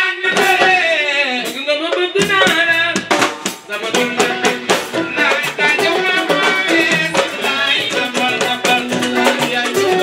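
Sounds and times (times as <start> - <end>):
fast dense percussion: 0.0 - 10.0.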